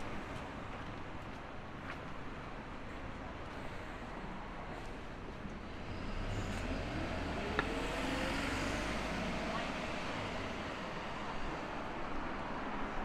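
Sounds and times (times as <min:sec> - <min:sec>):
city road traffic: 0:00.0 - 0:13.0
vehicle engine accelerating: 0:05.7 - 0:11.7.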